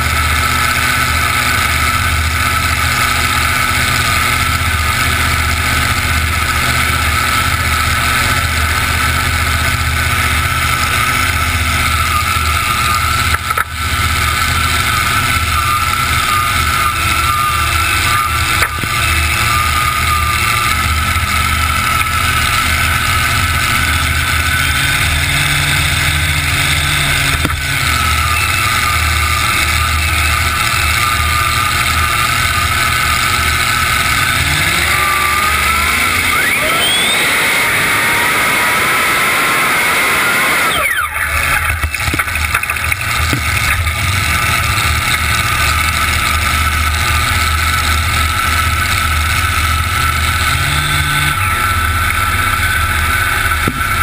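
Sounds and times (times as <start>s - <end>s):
tractor engines idling and revving: 0.0s - 54.0s.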